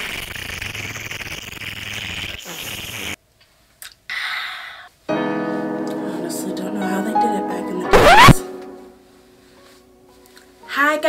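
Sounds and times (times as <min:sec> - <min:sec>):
intro music: 0:05.1 - 0:10.3
rising whoosh sound effect: 0:07.9 - 0:08.4.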